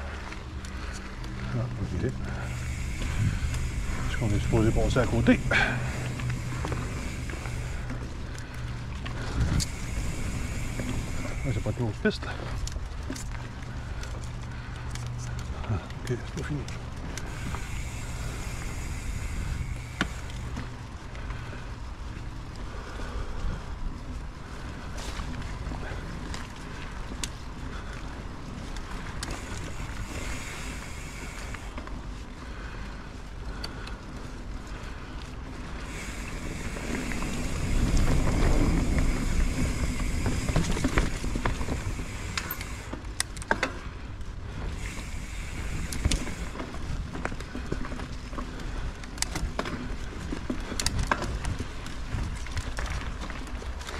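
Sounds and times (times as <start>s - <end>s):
bike clicks and rattles: 0.0s - 53.9s
bike tyres rumbling on dirt: 0.0s - 53.9s.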